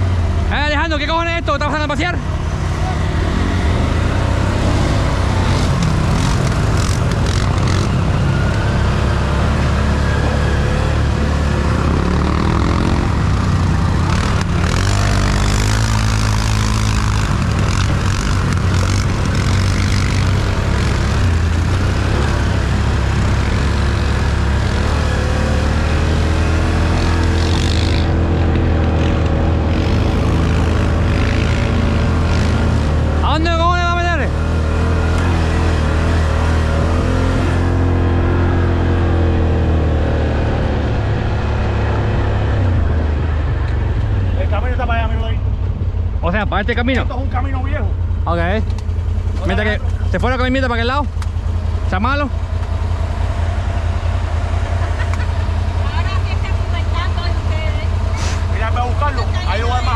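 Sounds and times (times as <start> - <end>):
quad bike engine revving: 0.0 - 45.5, 46.2 - 59.9.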